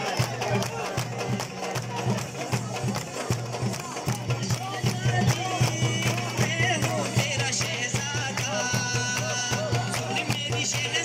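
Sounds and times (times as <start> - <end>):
drum beating steady rhythm: 0.0 - 11.0.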